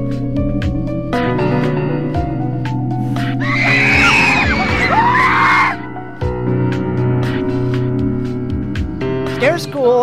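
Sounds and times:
background music: 0:00.0 - 0:10.0
people screaming: 0:03.4 - 0:05.9.

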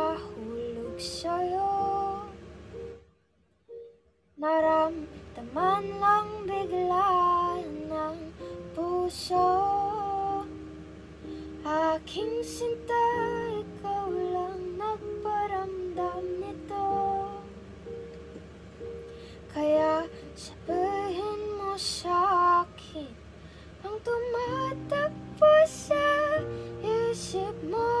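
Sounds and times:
woman singing slow song: 0:00.0 - 0:02.5, 0:04.4 - 0:18.0, 0:19.4 - 0:28.0.

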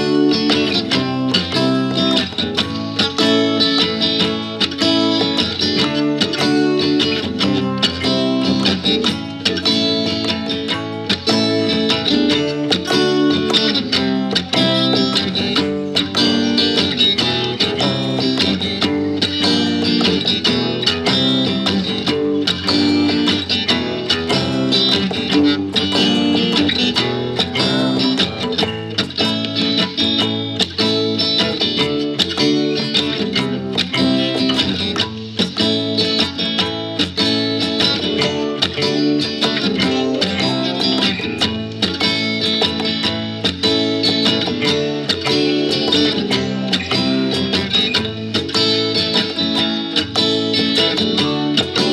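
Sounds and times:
programmed drum beat: 0:00.0 - 0:51.9
surf rock guitar music: 0:00.0 - 0:51.9.

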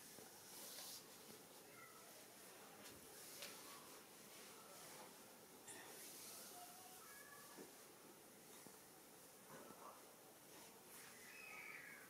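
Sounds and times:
faint high tone: 0:05.7 - 0:07.7.

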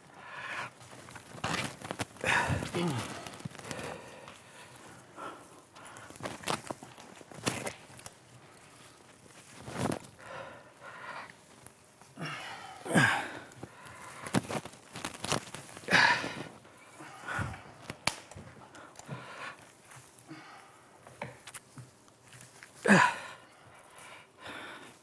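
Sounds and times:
heavy breathing: 0:00.0 - 0:21.6, 0:22.8 - 0:25.0
branches being handled: 0:00.0 - 0:25.0
pine foliage rustling: 0:00.0 - 0:25.0.

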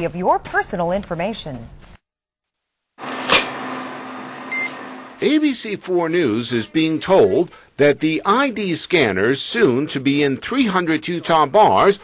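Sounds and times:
short electronic beep: 0:04.5 - 0:04.8.

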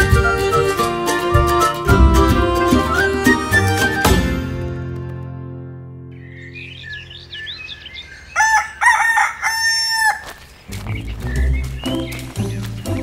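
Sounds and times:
background music with low beat: 0:00.0 - 0:05.0, 0:10.7 - 0:13.0
small birds chirping: 0:06.2 - 0:13.0
rooster crowing: 0:08.3 - 0:10.4.

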